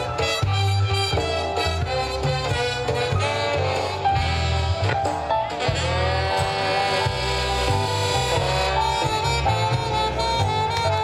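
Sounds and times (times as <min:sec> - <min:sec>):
electric guitar: 0:00.0 - 0:11.0
horns holding sustained notes: 0:00.0 - 0:11.0
low bass line: 0:00.0 - 0:11.0.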